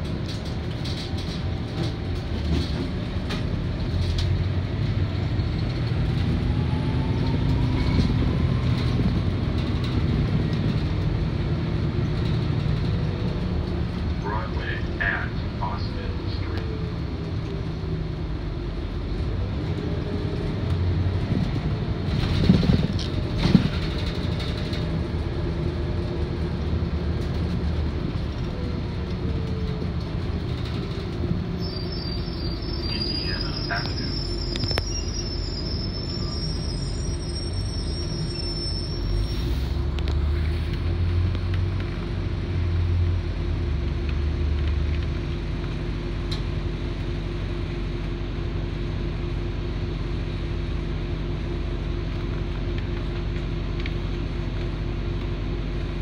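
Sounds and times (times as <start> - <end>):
bus diesel drone: 0.0 - 56.0
road rumble: 0.0 - 56.0
thin high squeal: 31.6 - 39.6.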